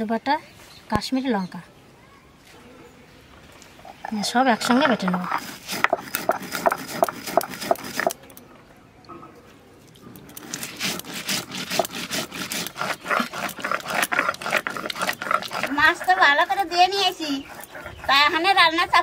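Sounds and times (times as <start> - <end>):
person speaking: 3.8 - 5.6
stone roller grinding on stone slab: 3.9 - 8.2, 10.3 - 19.0.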